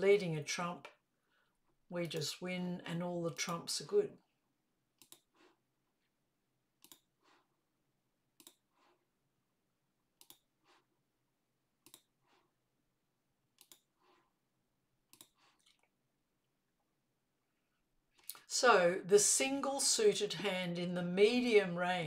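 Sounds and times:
sharp clicks: 0:05.0 - 0:05.3, 0:06.8 - 0:07.1, 0:10.2 - 0:10.5, 0:13.6 - 0:13.9, 0:15.1 - 0:15.4.

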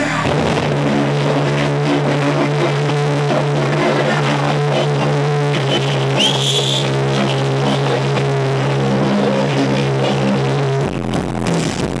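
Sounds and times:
high rising tone: 0:00.0 - 0:10.7
deep bass line: 0:00.0 - 0:12.0
loud electronic dance music: 0:00.0 - 0:12.0.

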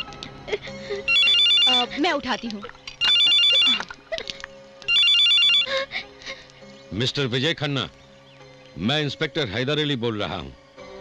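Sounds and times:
telephone ringing: 0:01.1 - 0:01.9, 0:03.0 - 0:03.9, 0:04.9 - 0:05.7.

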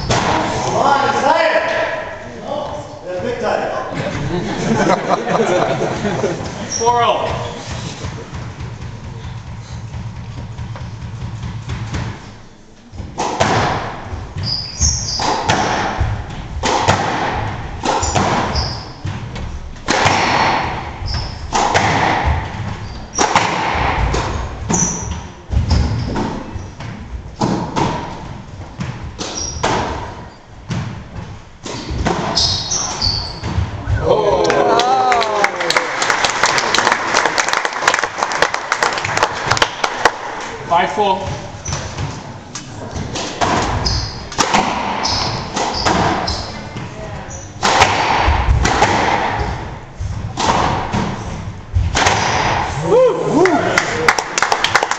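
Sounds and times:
sneakers squeaking on wooden floor: 0:00.0 - 0:00.4, 0:06.0 - 0:16.6, 0:17.3 - 0:19.8, 0:20.7 - 0:34.2, 0:40.4 - 0:47.6
squash ball thuds: 0:00.0 - 0:00.8, 0:07.2 - 0:34.1, 0:39.4 - 0:52.8
crowd calling out: 0:33.9 - 0:36.0, 0:52.8 - 0:54.2
crowd clapping: 0:34.4 - 0:40.4, 0:53.4 - 0:54.9.

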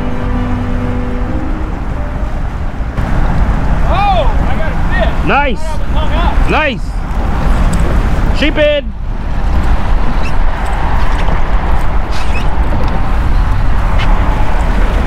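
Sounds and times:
held music chord: 0:00.0 - 0:03.0
steady low rumble: 0:00.0 - 0:15.0
man exclaiming: 0:03.9 - 0:06.9.

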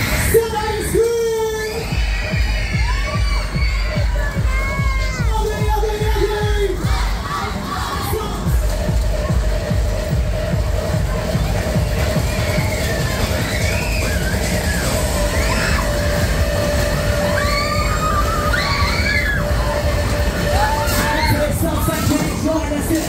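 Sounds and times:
riders screaming and shouting: 0:00.0 - 0:09.8, 0:10.6 - 0:23.0
loud bass-heavy music: 0:00.0 - 0:23.0.

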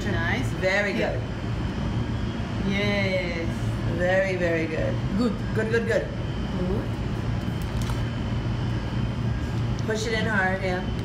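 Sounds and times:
faint high whine: 0:00.0 - 0:11.0
low mechanical hum: 0:00.0 - 0:11.0.

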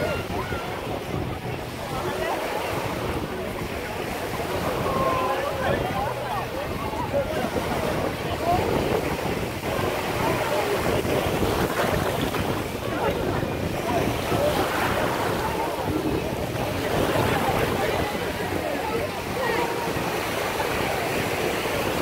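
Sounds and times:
faint indistinct voices: 0:00.0 - 0:22.0
small waves washing onto shore: 0:00.0 - 0:22.0
wind buffeting microphone: 0:00.0 - 0:22.0.

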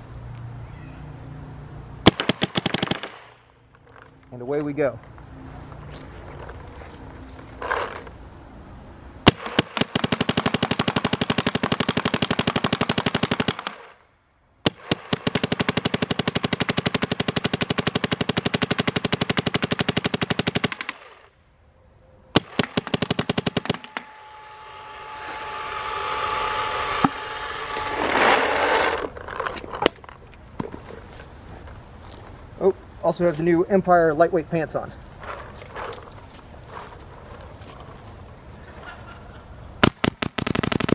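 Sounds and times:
paintball marker rapid firing: 0:02.0 - 0:03.4, 0:09.2 - 0:14.0, 0:14.7 - 0:21.3, 0:22.4 - 0:24.1, 0:39.8 - 0:40.9.

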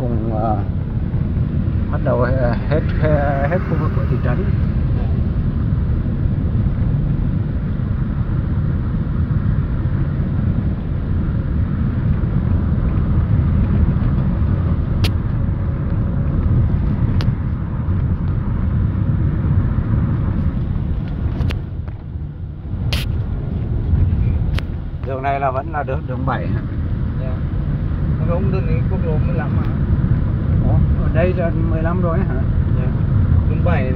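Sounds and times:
car driving interior rumble: 0:00.0 - 0:33.9.

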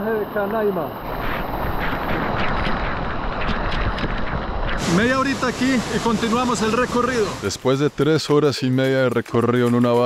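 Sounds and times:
small waterfall pouring: 0:02.5 - 0:07.9.

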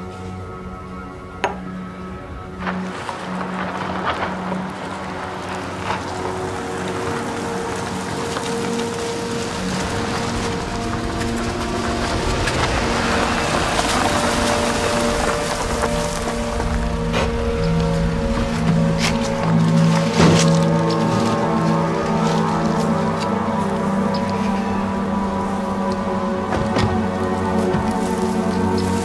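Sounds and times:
dramatic music score: 0:00.0 - 0:29.0
car driving on dirt track: 0:02.7 - 0:21.2.

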